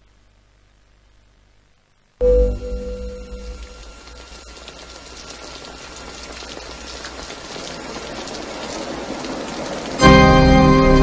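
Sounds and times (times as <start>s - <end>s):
short steady tone: 2.2s - 6.1s
even hiss: 2.2s - 11.0s.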